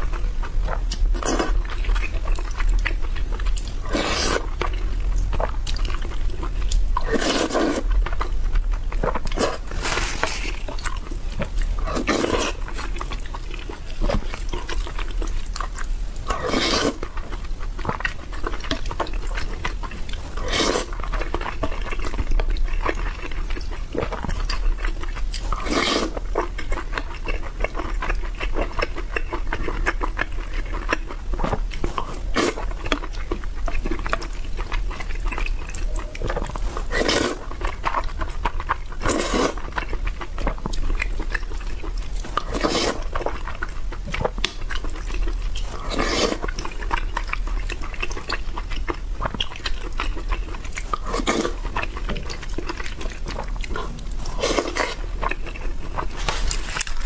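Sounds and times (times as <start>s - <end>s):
chewing: 0.0s - 57.0s
wet noodle slurps: 3.8s - 4.5s, 7.0s - 7.9s, 9.3s - 12.6s, 16.3s - 17.0s, 20.1s - 21.0s, 25.4s - 26.2s, 35.8s - 37.5s, 39.0s - 39.6s, 42.3s - 43.2s, 45.7s - 46.6s, 50.9s - 51.6s, 53.7s - 57.0s.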